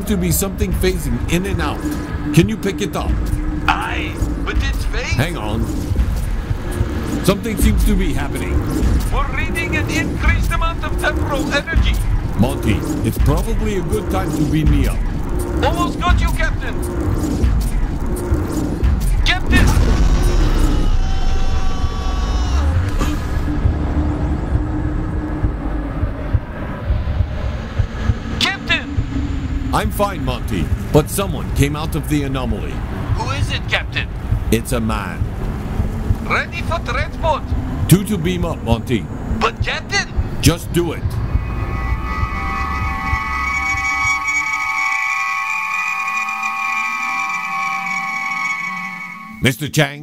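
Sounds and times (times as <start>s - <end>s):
steady hum: 0.0s - 21.1s
heavy rumble: 0.0s - 49.4s
uneven low thuds: 32.8s - 36.4s
chord of high tones: 41.2s - 49.5s.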